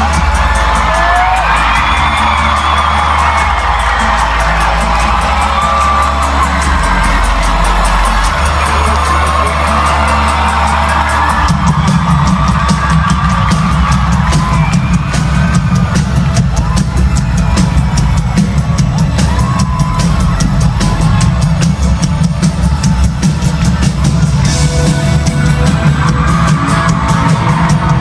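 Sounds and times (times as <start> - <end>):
crowd whooping and cheering: 0.0 - 28.0
live band music: 0.0 - 28.0
pulsing beat: 0.0 - 28.0.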